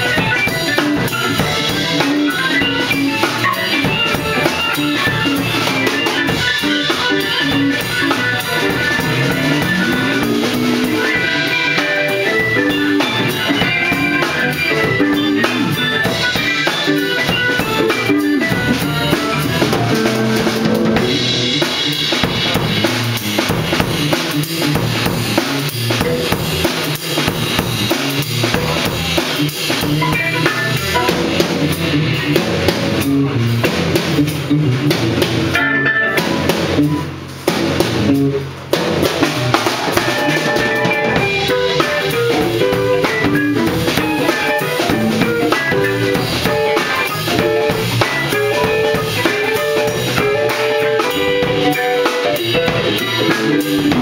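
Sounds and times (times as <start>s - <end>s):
drum kit: 0.0s - 54.0s
jazz-funk band playing: 0.0s - 54.0s.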